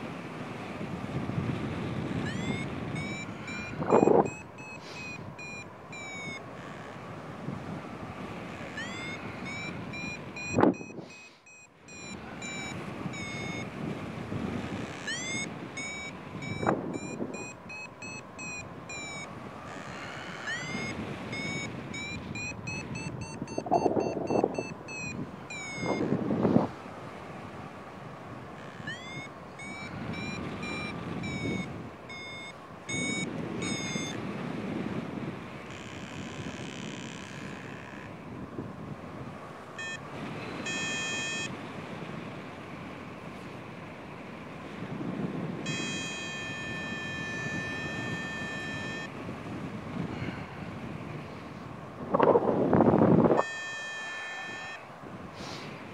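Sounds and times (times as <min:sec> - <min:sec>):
wind on microphone: 0:00.0 - 0:06.4, 0:12.2 - 0:43.5, 0:44.6 - 0:55.9
variometer beeping: 0:01.2 - 0:26.4, 0:28.1 - 0:38.6, 0:39.5 - 0:41.6, 0:45.0 - 0:51.1, 0:52.7 - 0:55.2.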